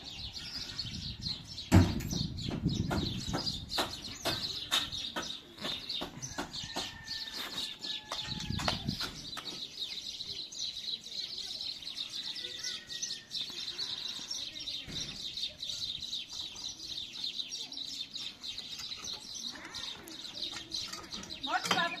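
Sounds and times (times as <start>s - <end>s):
small birds chirping in chorus: 0.0s - 22.0s.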